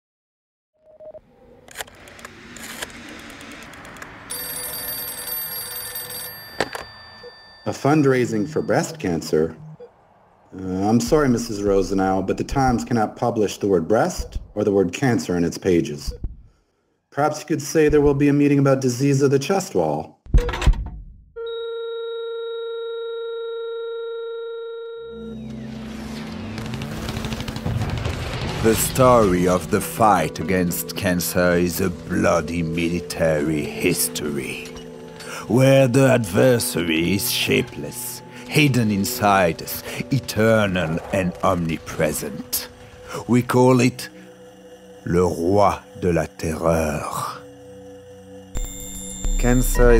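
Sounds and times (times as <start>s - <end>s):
crackling wash of noise: 1.2s - 4.6s, 8.9s - 13.4s
low dark electronic drone: 8.3s - 15.5s, 25.1s - 49.9s
steady electronic beep tone: 47.9s - 49.9s.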